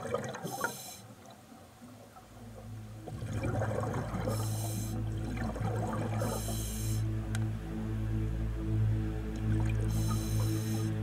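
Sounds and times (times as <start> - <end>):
exhaled bubbles gurgling: 0.0 - 7.0
regulator hissing inhalation: 4.3 - 5.0, 6.2 - 7.1, 9.9 - 11.0.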